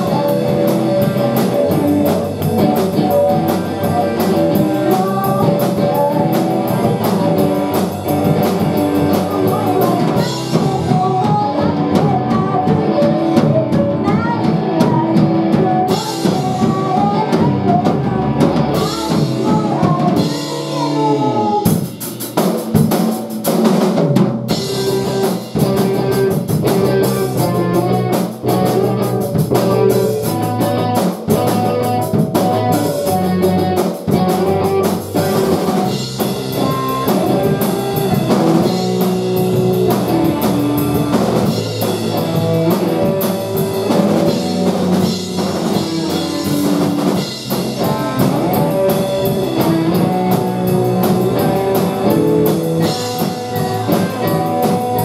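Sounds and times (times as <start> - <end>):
drum kit beat: 0.0 - 55.0
electric guitars: 0.0 - 55.0
live rock band playing: 0.0 - 55.0.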